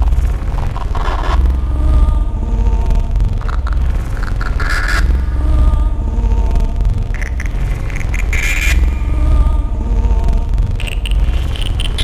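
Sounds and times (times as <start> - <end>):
deep bass drone: 0.0 - 12.0.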